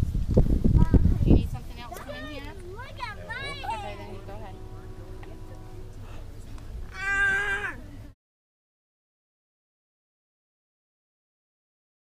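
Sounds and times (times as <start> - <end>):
high-pitched meow-like cry: 6.9 - 7.8.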